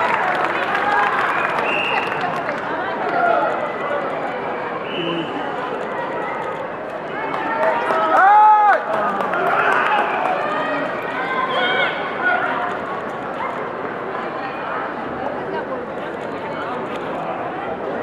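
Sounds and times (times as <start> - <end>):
din of many voices: 0.0 - 18.0.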